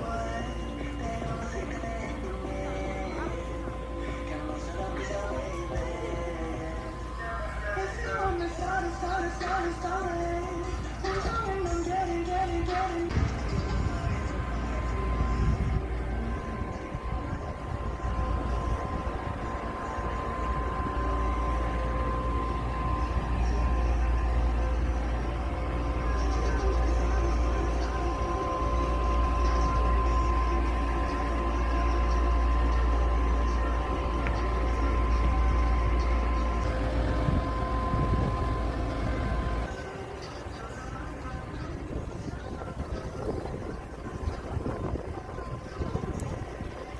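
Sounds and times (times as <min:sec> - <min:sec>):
music: 0:00.0 - 0:46.9
steady high tone: 0:00.0 - 0:46.9
voices: 0:00.0 - 0:46.9
wind rumbling on microphone: 0:00.0 - 0:46.9.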